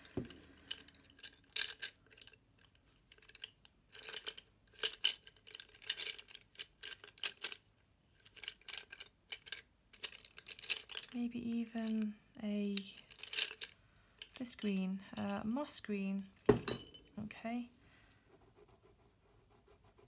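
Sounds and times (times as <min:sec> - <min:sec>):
wooden pencils clattering: 0:00.0 - 0:17.1.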